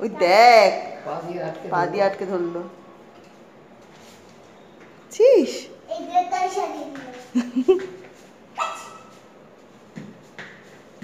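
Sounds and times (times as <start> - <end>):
dog barking: 8.6 - 9.2.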